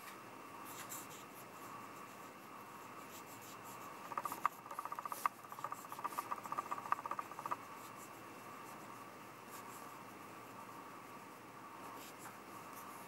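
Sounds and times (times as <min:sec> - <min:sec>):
pen nib scratching on paper: 0:03.1 - 0:08.0.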